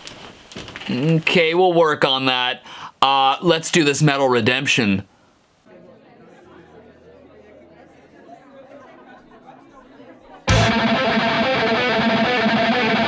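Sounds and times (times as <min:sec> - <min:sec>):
crowd chatter: 0:05.7 - 0:13.0
distorted electric guitar metal: 0:10.5 - 0:13.0.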